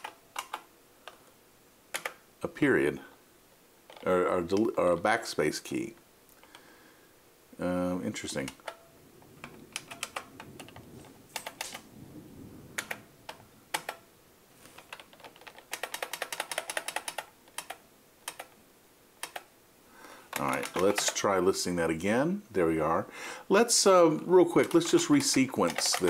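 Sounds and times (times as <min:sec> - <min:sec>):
keyboard typing: 0:00.0 - 0:01.2, 0:01.9 - 0:02.2, 0:09.4 - 0:11.8, 0:12.8 - 0:14.0, 0:14.7 - 0:18.6, 0:19.2 - 0:19.5, 0:20.3 - 0:21.4, 0:24.5 - 0:26.0.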